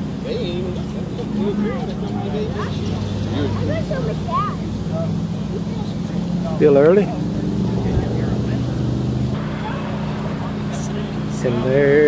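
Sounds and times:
engine idling hum: 0.0s - 12.0s
faint voices: 0.0s - 12.0s.

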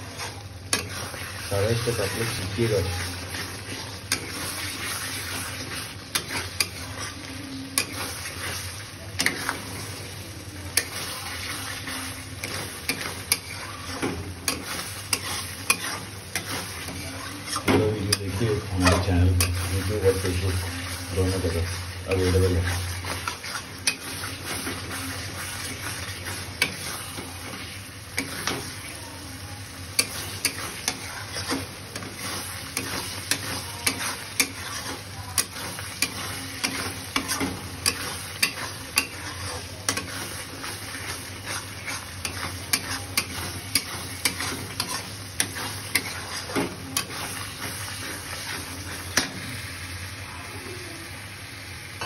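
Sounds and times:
masala sizzling in pan: 0.0s - 52.0s.

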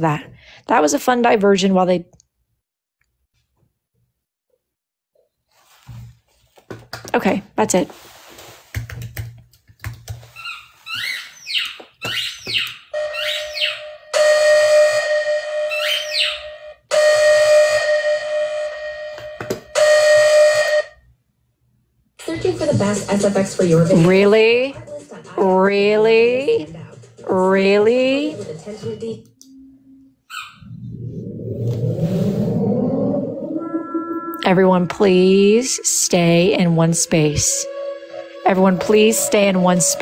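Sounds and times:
falling whistle-like chirps: 30.3s - 34.5s
horn-like tone blasts: 33.1s - 40.0s.

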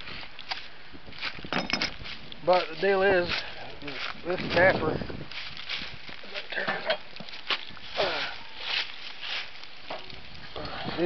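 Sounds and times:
footsteps on dry leaves and gravel: 0.0s - 11.0s.

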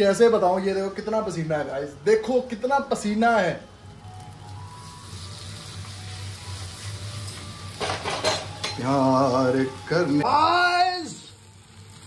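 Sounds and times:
man's voice: 8.8s - 11.2s.

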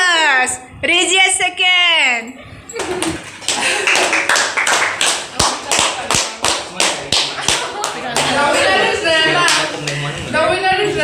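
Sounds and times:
group clapping in rhythm: 3.0s - 8.5s, 9.4s - 10.1s.

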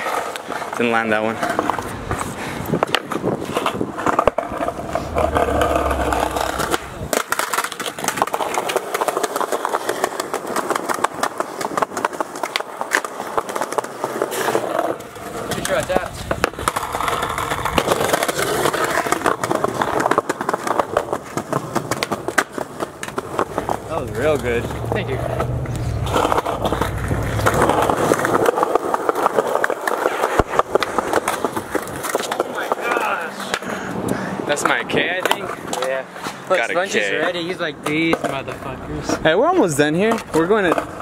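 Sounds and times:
skateboard clacking: 0.0s - 41.0s
skateboard wheels rolling on concrete: 0.0s - 41.0s.

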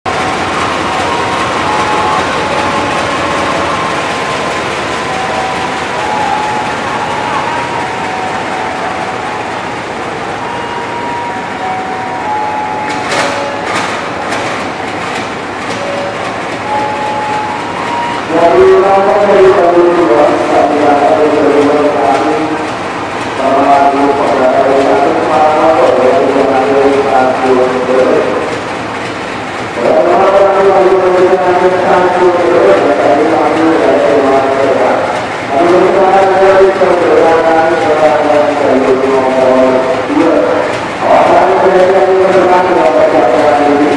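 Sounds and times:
diesel locomotive engine running: 0.1s - 43.9s.

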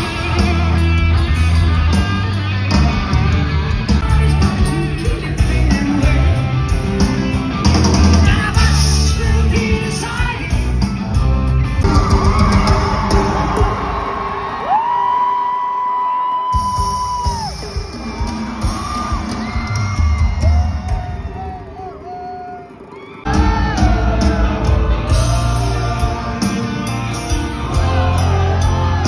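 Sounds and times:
live rock band: 0.0s - 15.6s, 16.3s - 21.7s, 23.2s - 29.0s
crowd yelling: 11.6s - 29.0s.

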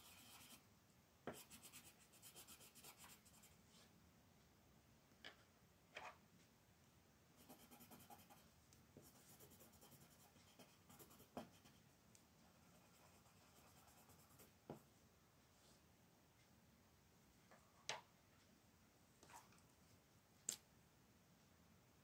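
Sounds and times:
pencil scratching on paper: 0.0s - 0.6s, 1.3s - 3.6s, 7.4s - 8.4s, 9.0s - 11.8s, 12.5s - 14.8s.

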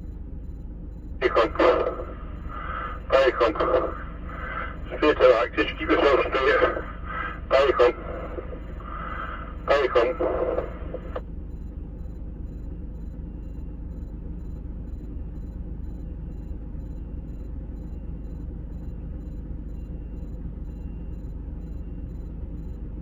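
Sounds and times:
vehicle engines idling: 0.0s - 23.0s.

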